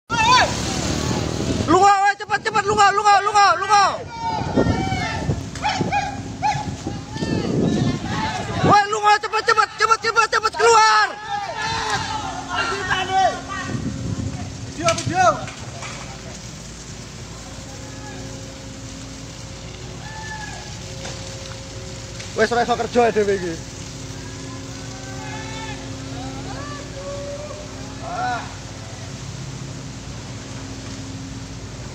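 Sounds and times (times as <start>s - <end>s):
person shouting: 0.1s - 0.6s, 25.0s - 28.6s
heavy machinery rumbling: 0.1s - 31.9s
steady hiss: 0.1s - 31.9s
distant voices calling: 2.5s - 31.9s.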